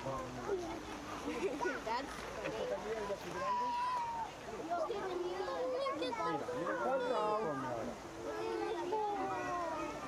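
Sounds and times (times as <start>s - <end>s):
people and children chattering: 0.0s - 10.0s.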